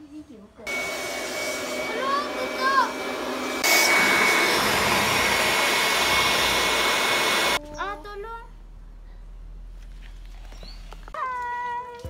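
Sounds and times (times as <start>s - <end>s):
electric air pump whirring: 0.7s - 7.6s
high-pitched voice: 1.8s - 3.1s.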